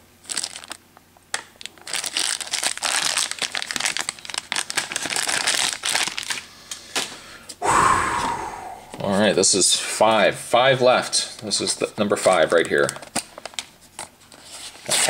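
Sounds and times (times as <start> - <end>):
packaging ripping: 0.2 - 0.8, 1.6 - 6.4
plastic packaging crinkling: 0.2 - 7.1, 11.4 - 15.0.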